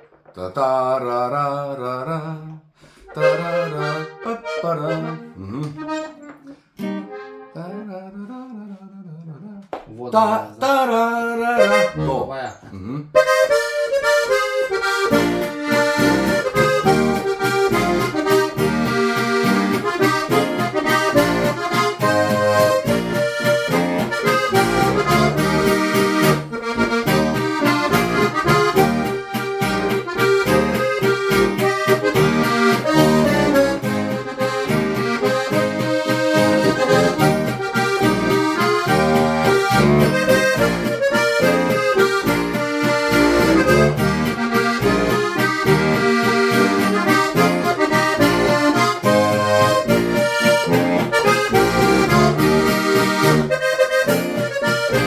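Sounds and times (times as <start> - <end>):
button accordion folk tune: 2.0 - 8.8, 11.3 - 55.0.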